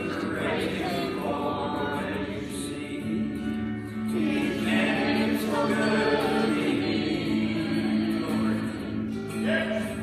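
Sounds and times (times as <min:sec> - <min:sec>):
acoustic guitar: 0:00.0 - 0:10.0
group singing gospel song: 0:00.0 - 0:10.0.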